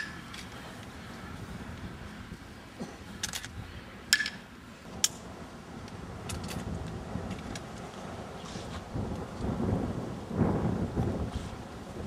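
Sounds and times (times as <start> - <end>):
low rumbling noise: 0.0 - 12.0.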